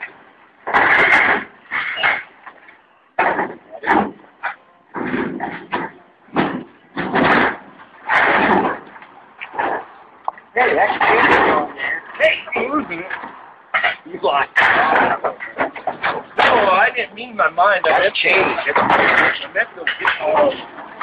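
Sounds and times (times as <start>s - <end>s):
appliance bumping and scraping: 3.2s - 10.0s, 10.6s - 21.0s.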